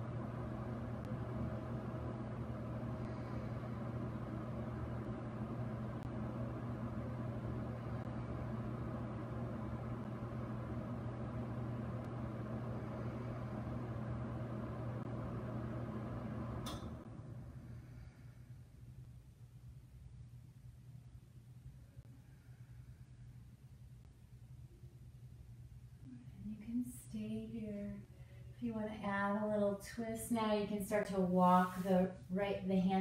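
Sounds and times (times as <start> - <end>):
low machine hum: 0.0 - 33.0.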